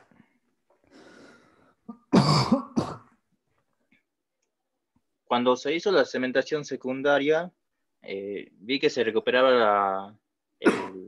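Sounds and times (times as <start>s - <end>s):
faint breath: 0.8s - 1.9s
person coughing: 1.9s - 3.2s, 10.6s - 11.0s.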